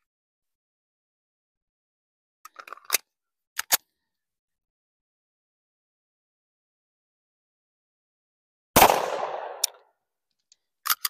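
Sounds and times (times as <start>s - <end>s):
sharp handgun clicks: 8.8s - 9.8s
handgun clicks and knocks: 9.5s - 11.0s.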